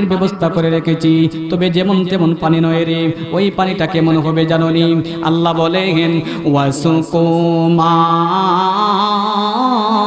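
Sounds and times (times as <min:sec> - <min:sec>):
man chanting through microphone: 0:00.0 - 0:10.0.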